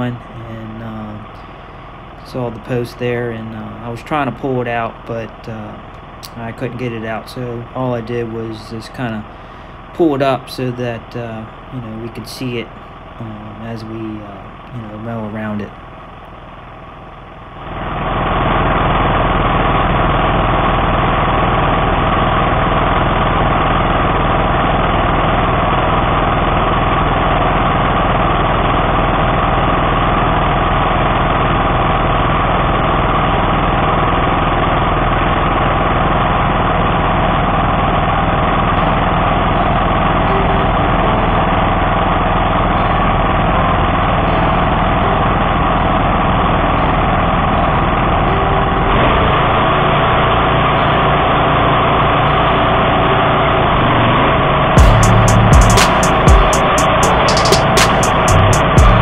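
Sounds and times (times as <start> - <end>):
mower engine running: 17.6 - 59.0.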